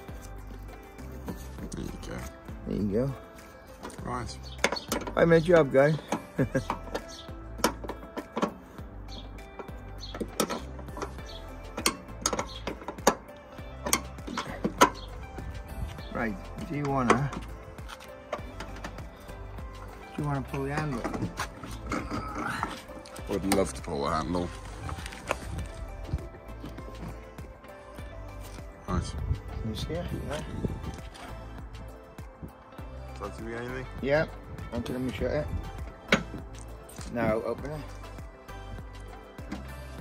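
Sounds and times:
background music: 0.0s - 40.0s.

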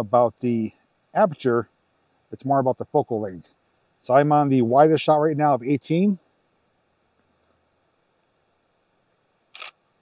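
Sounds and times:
camera shutter and mirror clack: 9.5s - 9.8s.

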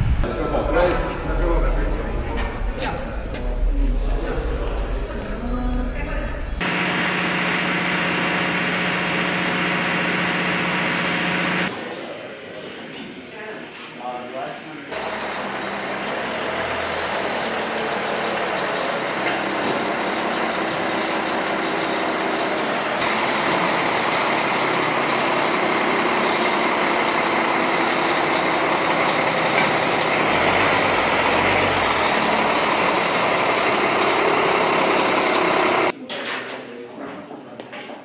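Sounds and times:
truck diesel engine running: 6.3s - 11.7s, 15.0s - 35.9s.

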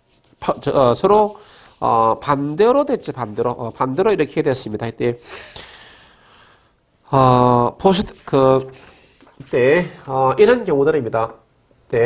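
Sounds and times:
man speaking: 0.4s - 5.2s, 7.1s - 12.0s
man breathing into microphone: 1.4s - 1.8s.

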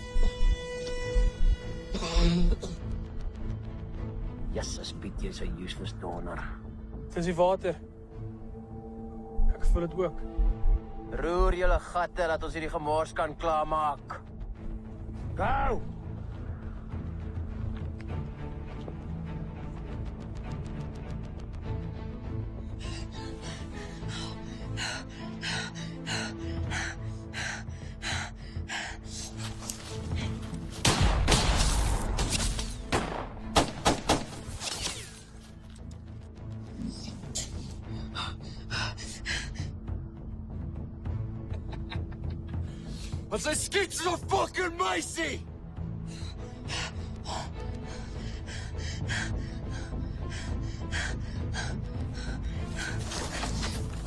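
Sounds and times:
tense action film score: 0.0s - 54.0s
woman panting: 22.8s - 30.6s.

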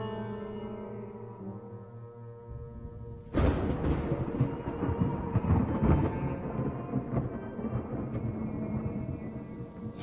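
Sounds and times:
background music with held tones: 0.0s - 10.0s
thunder rumbling and crackling: 2.8s - 10.0s.

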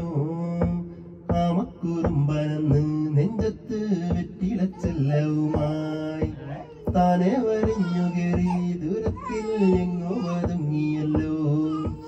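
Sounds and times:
backing track with steady beat: 0.0s - 12.0s
man singing: 0.0s - 12.0s.

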